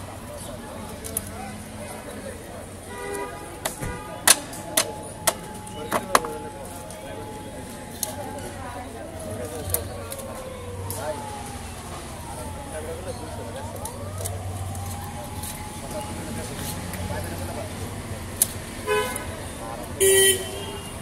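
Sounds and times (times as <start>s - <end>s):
traffic: 0.0s - 21.0s
vehicle horn toots: 18.8s - 19.3s, 20.0s - 21.0s.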